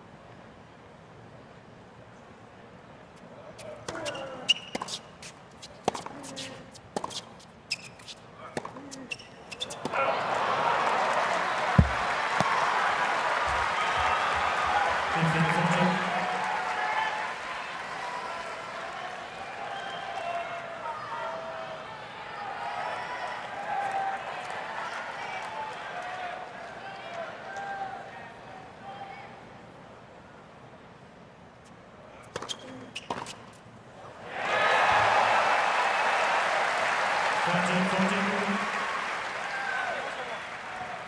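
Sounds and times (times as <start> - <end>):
tennis ball bouncing on hard court: 3.8 - 10.0, 11.7 - 12.6, 32.3 - 33.4
loud crowd noise: 8.5 - 29.8, 34.0 - 41.0.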